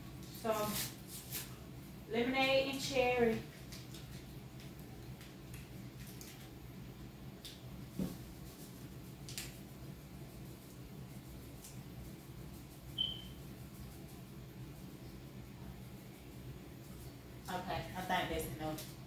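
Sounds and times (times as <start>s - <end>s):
brief high squeak: 13.0s - 13.4s.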